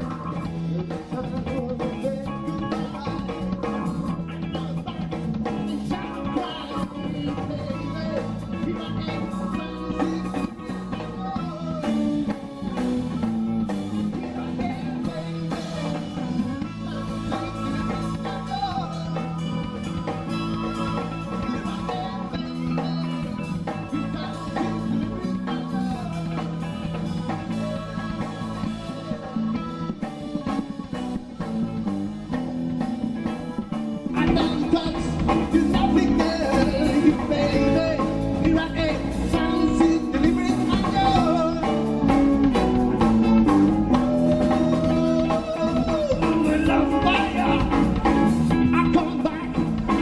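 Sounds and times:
drum kit: 0.0 - 50.0
electric bass: 0.0 - 50.0
electric guitar: 0.0 - 50.0.

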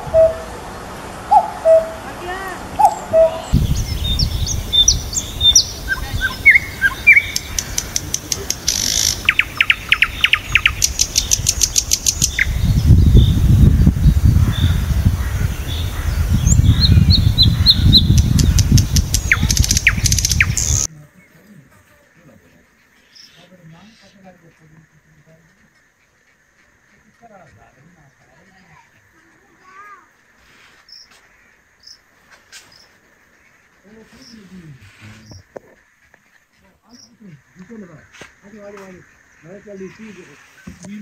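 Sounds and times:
small birds chirping: 1.3 - 41.0.

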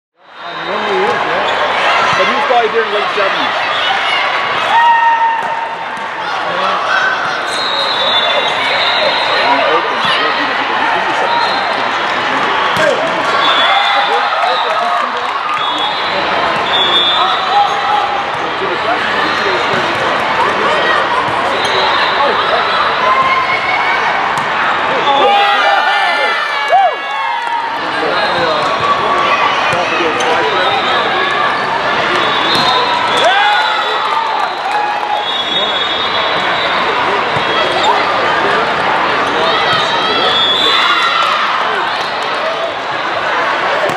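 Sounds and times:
hubbub of many voices: 0.2 - 43.9.

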